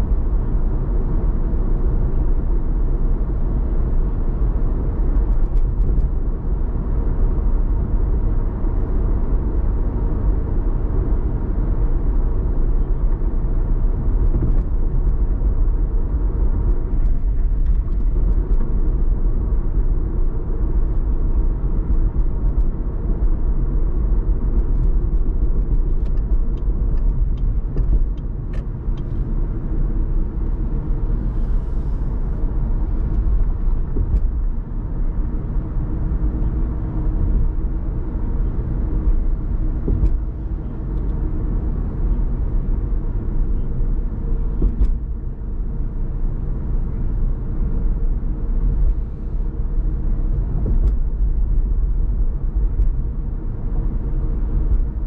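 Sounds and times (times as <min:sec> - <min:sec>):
road and engine rumble: 0:00.0 - 0:55.0.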